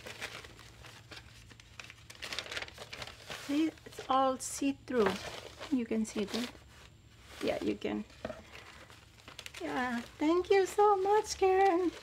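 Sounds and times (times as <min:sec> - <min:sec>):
paper sheet rustling and crinkling: 0:00.0 - 0:12.0.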